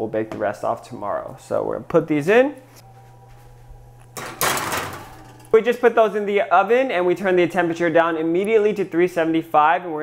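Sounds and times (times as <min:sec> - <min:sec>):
metal baking sheet scraping: 0:04.2 - 0:05.6.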